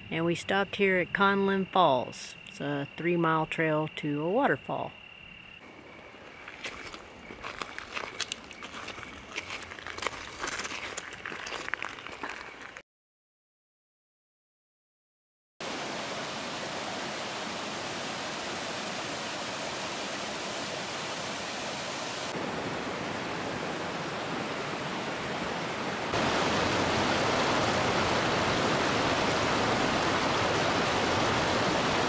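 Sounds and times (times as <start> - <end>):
creek cascading over boulders: 15.6 - 32.0
waterfall rushing: 15.6 - 32.0.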